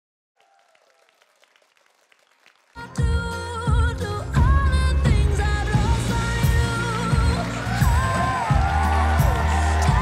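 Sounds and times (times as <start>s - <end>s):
faint applause: 0.4s - 3.2s, 6.6s - 10.0s.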